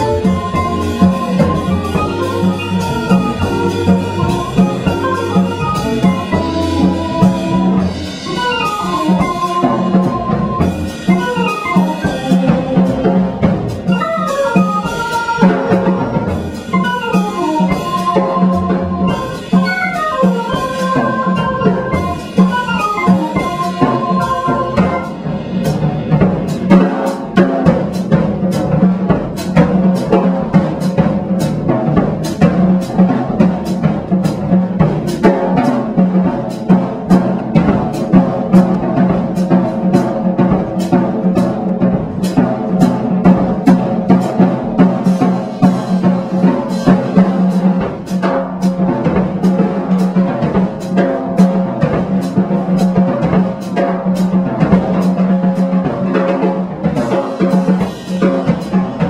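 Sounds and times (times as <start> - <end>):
electric organ: 0.0 - 12.8, 16.7 - 25.2
drum kit with cymbal hits: 0.0 - 59.0.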